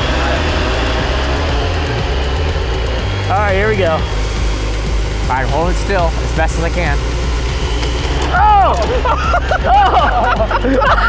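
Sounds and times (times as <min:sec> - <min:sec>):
high whine of electric motors: 0:00.0 - 0:11.0.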